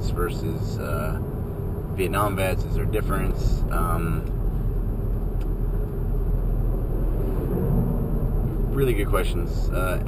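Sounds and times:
car cabin road rumble: 0.0 - 10.0.

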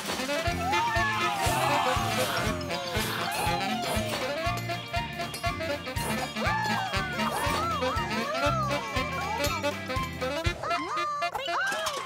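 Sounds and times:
cartoon music with steady beat: 0.2 - 11.2.

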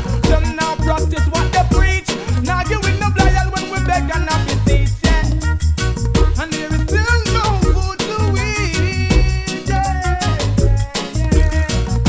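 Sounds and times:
gliding melodic line: 0.0 - 10.8
deep bass line: 0.0 - 12.0
drums and percussion: 0.0 - 12.0.

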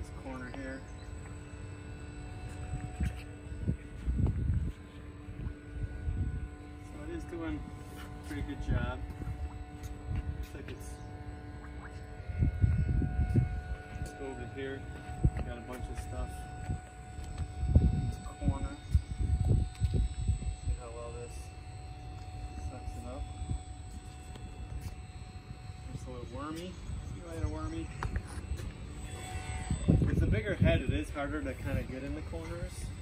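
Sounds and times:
pool vacuum humming underwater: 0.0 - 33.0
low rumbling: 0.8 - 20.9.

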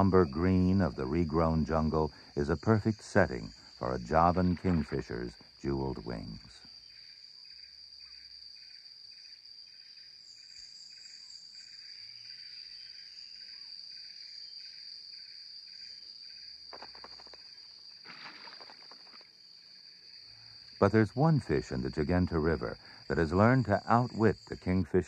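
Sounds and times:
insect chorus trilling: 0.0 - 25.0
pulsing insect chirping: 0.0 - 25.0
rustling: 16.7 - 19.3.

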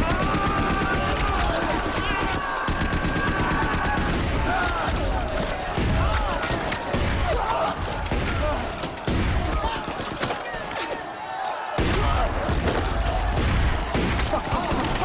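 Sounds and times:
rifle and machine-gun fire: 0.0 - 10.3, 11.8 - 15.0
soldiers shouting: 0.0 - 15.0.

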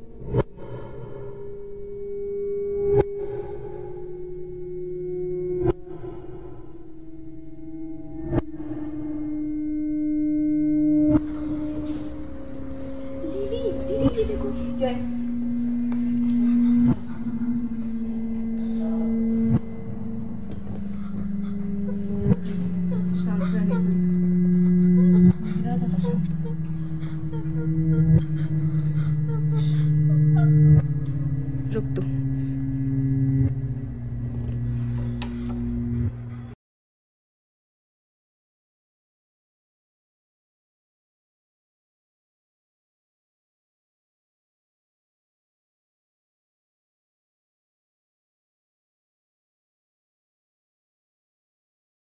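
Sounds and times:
drone tone with overtones: 0.0 - 36.6.

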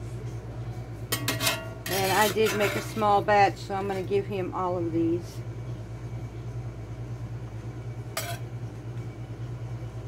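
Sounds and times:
steady low hum: 0.0 - 10.0
metal spatula clinking on plate: 1.2 - 3.0.

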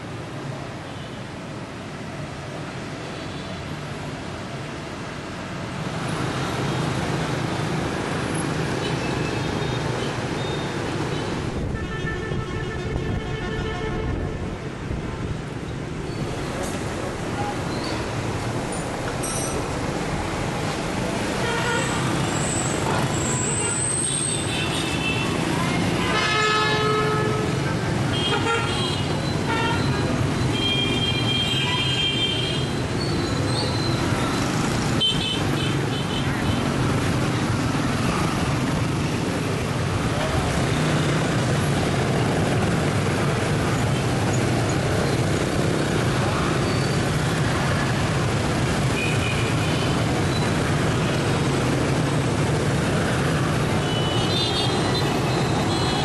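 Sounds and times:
scooter and car traffic: 0.0 - 56.0.

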